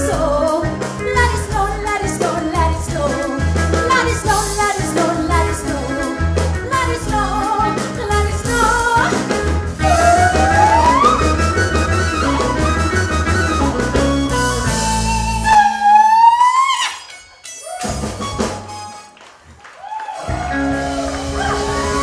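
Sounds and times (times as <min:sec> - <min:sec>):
live band playing: 0:00.0 - 0:19.6, 0:20.2 - 0:22.0
woman singing long notes: 0:09.8 - 0:11.2.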